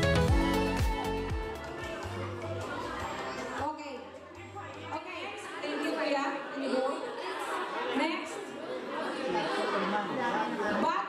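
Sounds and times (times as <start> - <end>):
crowd chatter in a hall: 0.0 - 11.0.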